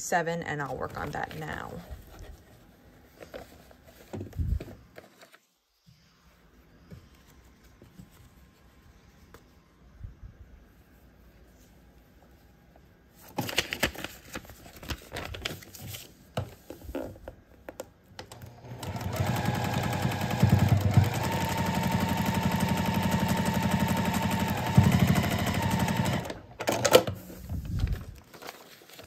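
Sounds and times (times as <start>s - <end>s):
fabric and paper rustling: 0.6s - 9.7s, 10.7s - 17.3s, 27.2s - 29.0s
sewing machine stitching: 18.2s - 27.1s.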